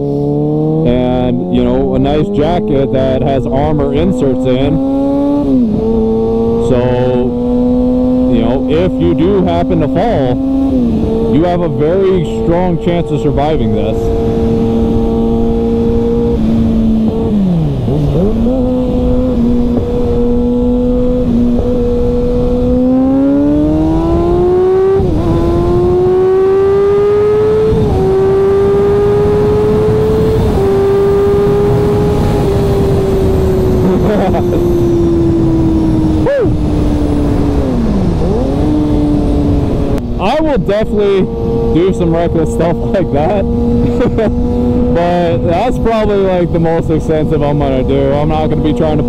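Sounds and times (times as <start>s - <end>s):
motorcycle engine revving: 0.0s - 49.0s
wind rushing: 27.7s - 42.4s.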